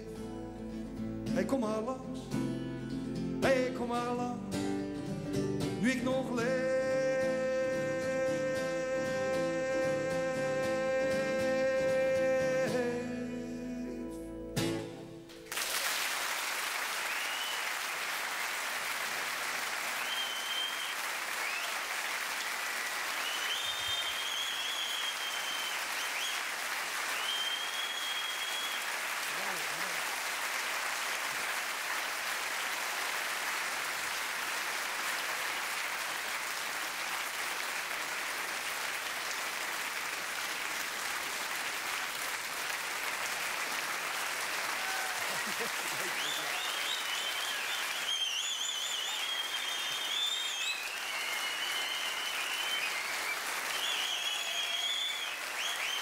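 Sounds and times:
audience applauding: 15.4 - 56.0
high-pitched whistles: 20.0 - 21.8, 23.1 - 26.5, 27.1 - 28.9, 46.3 - 56.0.

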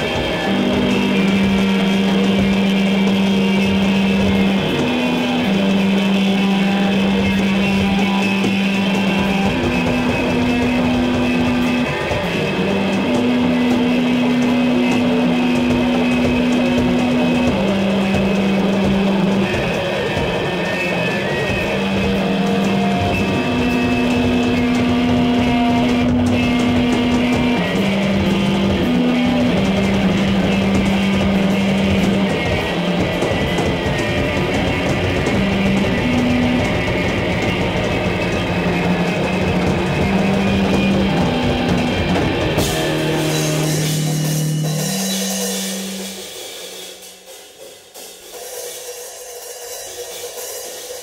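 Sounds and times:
electric guitar: 0.0 - 46.9
drum kit: 0.0 - 51.0.

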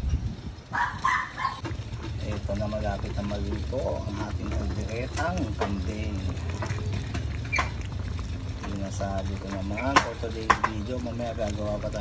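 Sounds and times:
pan simmering: 1.6 - 12.0.

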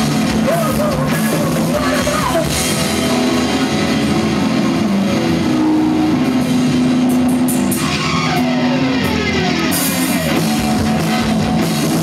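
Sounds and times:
drum kit: 0.0 - 12.0
electric guitar holding long notes: 0.0 - 12.0
punk band playing loud: 0.0 - 12.0.

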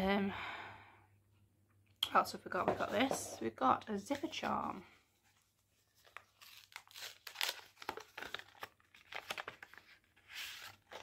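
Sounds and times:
packet tearing and crinkling: 6.0 - 11.0.

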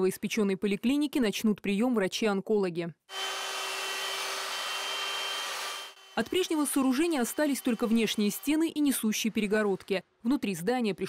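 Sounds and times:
electric drill mixer whining: 3.1 - 8.8.

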